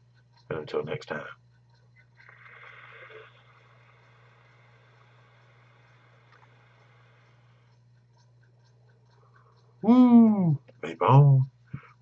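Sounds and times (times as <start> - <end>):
steady low hum: 0.0 - 12.0
airy hiss of vaping: 2.3 - 5.0.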